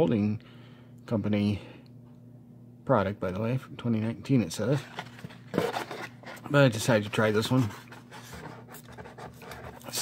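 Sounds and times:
blister pack scraping and rustling: 0:04.8 - 0:10.0.

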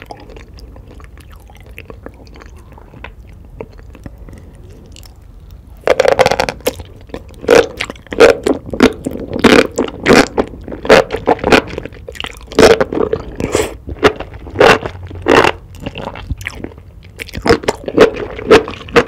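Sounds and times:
wet chewing of mushrooms: 0:00.0 - 0:19.0.

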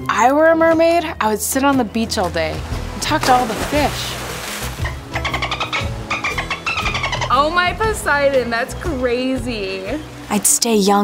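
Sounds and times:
background music: 0:00.0 - 0:11.0
dolphin chattering squeaks: 0:04.8 - 0:08.0.

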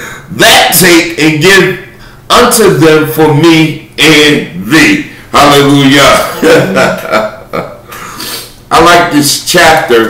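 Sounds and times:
man laughing: 0:06.2 - 0:08.0.

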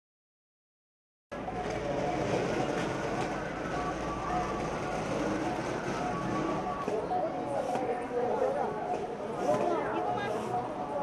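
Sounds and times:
outdoor hubbub: 0:01.3 - 0:11.0.

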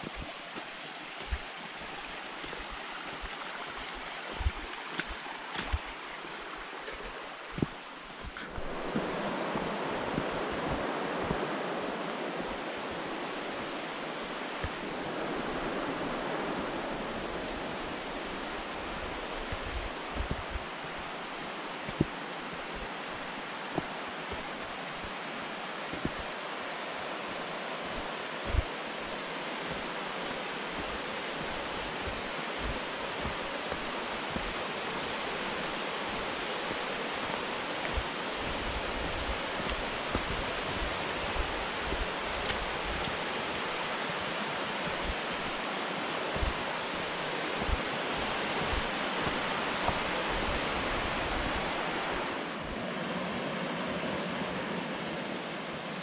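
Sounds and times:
creek rushing over rocks: 0:00.0 - 0:52.8.

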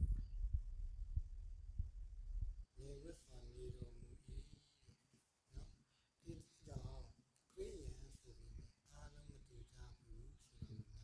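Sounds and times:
low dull thuds: 0:00.0 - 0:02.8
faint low rumble: 0:00.0 - 0:11.0.

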